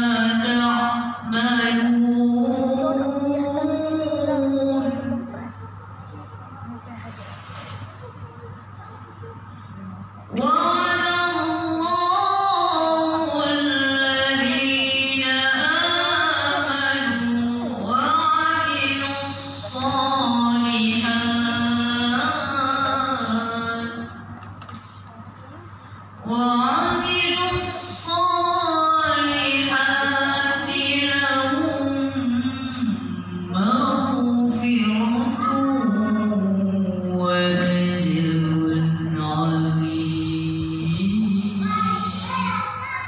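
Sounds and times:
boy reciting melodically: 0.0 - 6.4, 10.0 - 25.6, 26.2 - 43.0
boy chanting melodically: 26.2 - 43.0.

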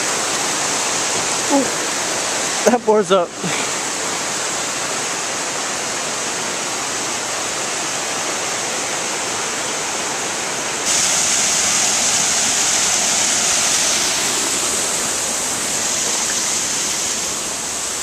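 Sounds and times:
small waterfall pouring into pool: 0.0 - 18.0
water rushing over stone weir: 0.0 - 18.0.

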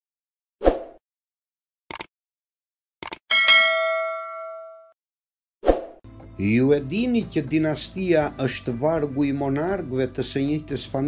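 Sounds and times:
short clicks: 1.9 - 2.1, 3.0 - 3.2
bell-like ding: 3.3 - 5.0.

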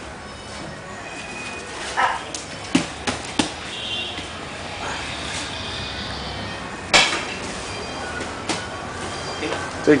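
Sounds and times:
bodies slapping on mat: 2.3 - 4.3.

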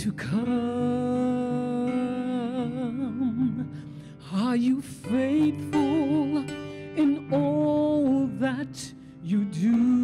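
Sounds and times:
quiet instrumental backing: 0.0 - 10.0
woman singing gospel with vibrato: 0.0 - 10.0.

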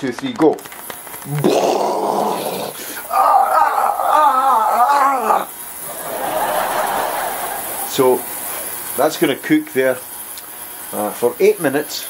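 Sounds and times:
ultrasonic cleaner harsh buzz: 4.5 - 12.0.

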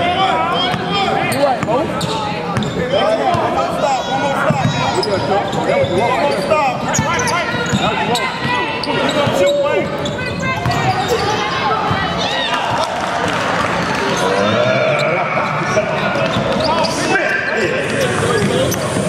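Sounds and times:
voices calling out and talking: 0.0 - 19.0.

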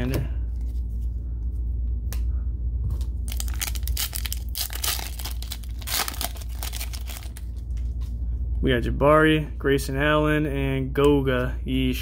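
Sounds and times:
steady low hum: 0.0 - 12.0
plastic wrapper tearing and crinkling: 3.2 - 8.0.

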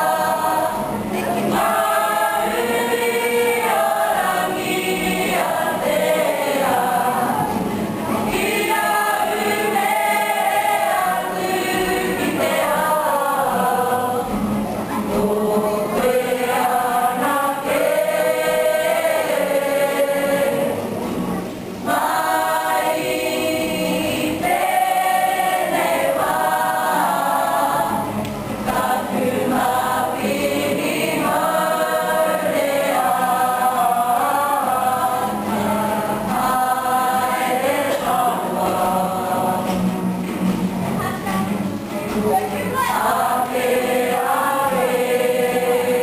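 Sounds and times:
acoustic guitar: 0.0 - 46.0
group singing in unison: 0.0 - 46.0.

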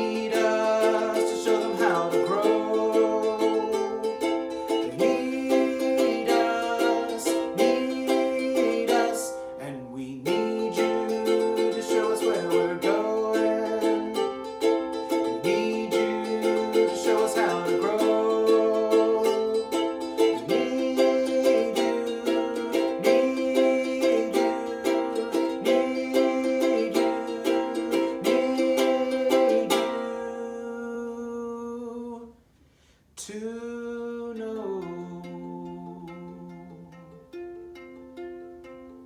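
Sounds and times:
ukulele strumming: 0.0 - 32.1, 34.3 - 39.0
man singing: 0.0 - 32.4, 33.2 - 37.4.

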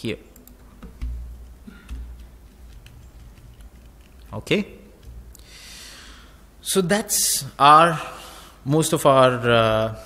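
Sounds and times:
computer keys clicking: 0.4 - 5.4.

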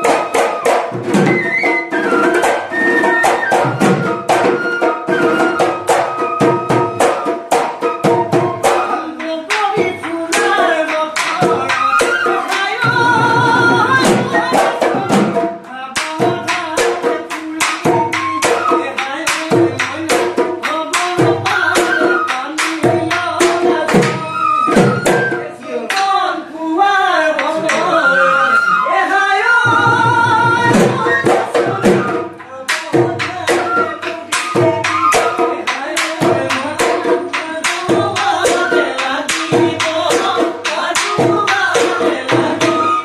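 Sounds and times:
man singing: 8.8 - 43.0.

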